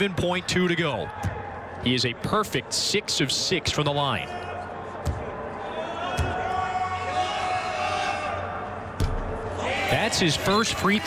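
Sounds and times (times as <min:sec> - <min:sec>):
low arena hum: 0:00.0 - 0:11.0.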